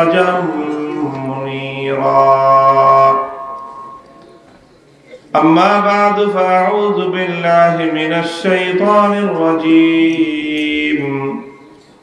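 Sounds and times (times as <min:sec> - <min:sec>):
man chanting through loudspeakers: 0:00.0 - 0:04.0, 0:05.4 - 0:11.8.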